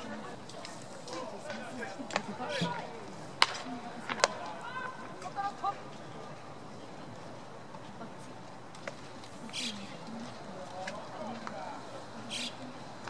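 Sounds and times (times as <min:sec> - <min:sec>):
murmur of voices: 0:00.0 - 0:13.0
baseball cracks: 0:03.4 - 0:05.3.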